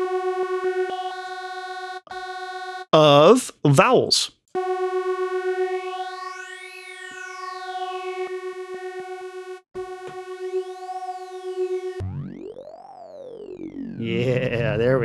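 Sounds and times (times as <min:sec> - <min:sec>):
synthesizer note with vowel sounds: 0:04.6 - 0:15.0.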